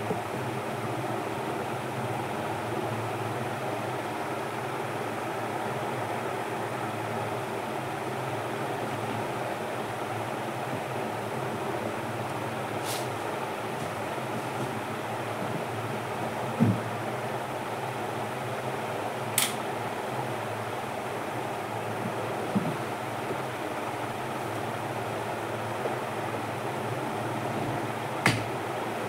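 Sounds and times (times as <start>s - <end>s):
mechanical room hum: 0.0s - 29.0s.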